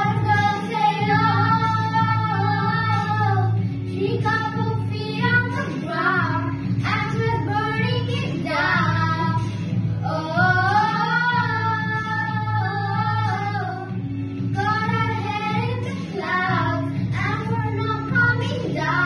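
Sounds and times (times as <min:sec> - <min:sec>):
girls singing pop song: 0:00.0 - 0:19.0.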